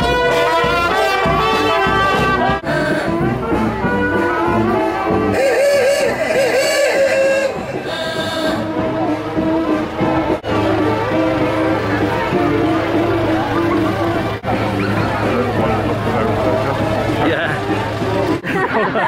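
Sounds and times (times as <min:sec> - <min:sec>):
marching brass band: 0:00.0 - 0:19.0.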